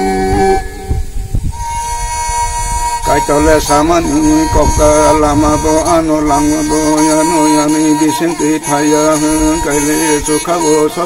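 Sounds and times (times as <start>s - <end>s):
bowed folk fiddle: 0.0s - 11.0s.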